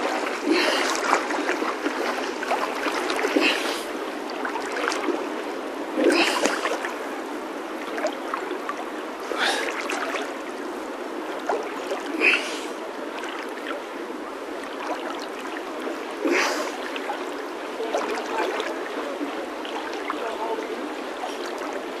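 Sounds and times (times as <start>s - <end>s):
river water sloshing and lapping: 0.0s - 22.0s
water splashes: 0.0s - 22.0s.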